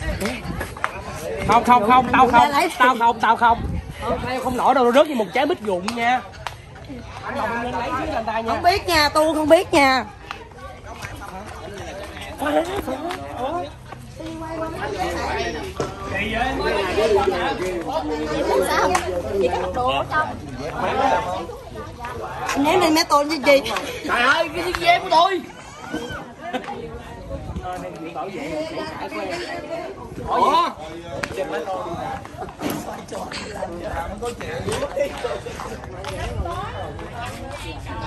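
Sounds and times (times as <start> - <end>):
overlapping chatter of voices: 0.0 - 38.0
people talking: 0.0 - 38.0.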